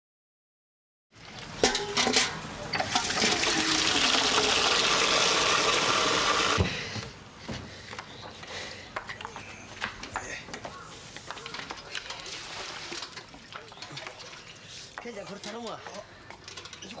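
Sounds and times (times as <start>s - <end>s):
rushing water: 12.0s - 15.0s.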